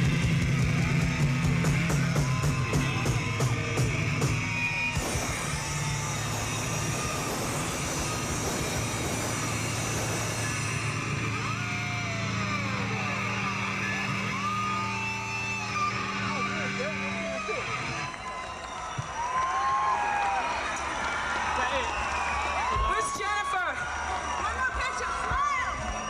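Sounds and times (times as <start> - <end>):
amplified electric guitars ringing: 0.0 - 18.2
audience shouting and whooping: 0.3 - 26.0.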